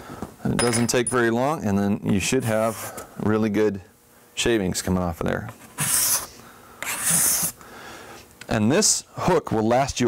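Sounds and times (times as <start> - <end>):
card scraper scraping wood: 5.6 - 7.6.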